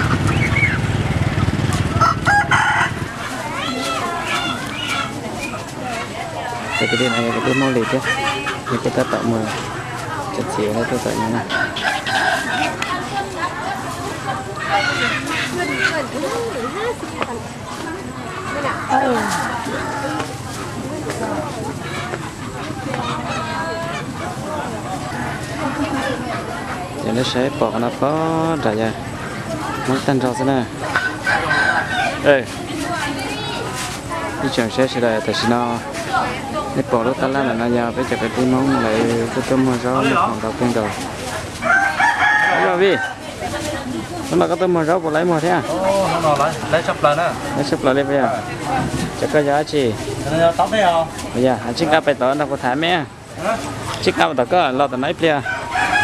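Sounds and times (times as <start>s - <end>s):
people's voices: 0.0s - 56.0s
rooster crowing: 1.9s - 3.8s, 11.4s - 12.9s, 30.8s - 32.3s, 41.6s - 43.2s, 55.1s - 56.0s.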